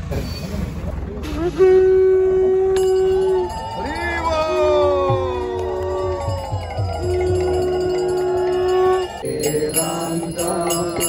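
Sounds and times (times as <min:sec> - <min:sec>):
conch shell blown: 0:01.2 - 0:03.8, 0:06.0 - 0:09.2
chanting: 0:02.6 - 0:11.0
music: 0:05.1 - 0:08.5.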